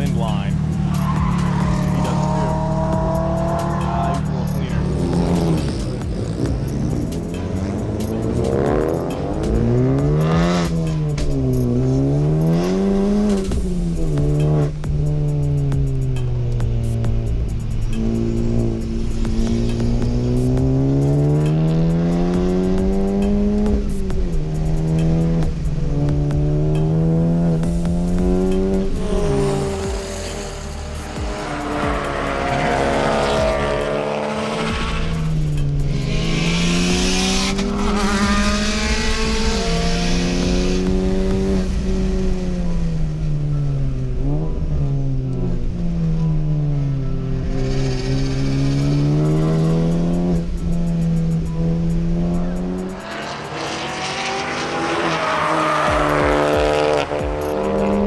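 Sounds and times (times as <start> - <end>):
car engine revving hard: 0.0 - 16.3, 16.9 - 58.0.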